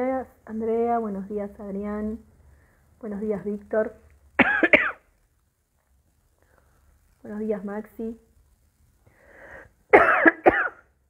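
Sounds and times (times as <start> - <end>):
breath in: 2.4 - 3.0, 9.0 - 9.8
woman coughing: 4.4 - 5.0, 10.0 - 10.9.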